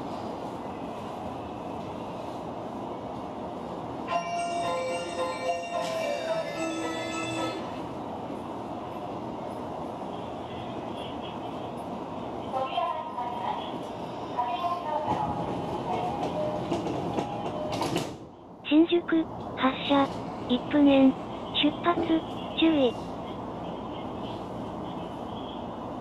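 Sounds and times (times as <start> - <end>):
muffled platform announcement: 4.0 - 8.1, 10.0 - 18.0, 18.6 - 26.0.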